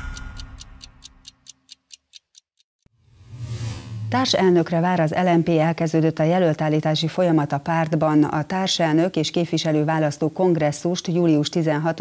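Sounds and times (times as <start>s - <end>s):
clock-like ticking: 0.0s - 2.6s.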